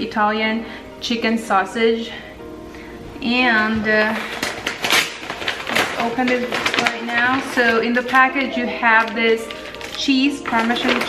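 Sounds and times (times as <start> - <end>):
paper bag rustling and crinkling: 3.7 - 11.0.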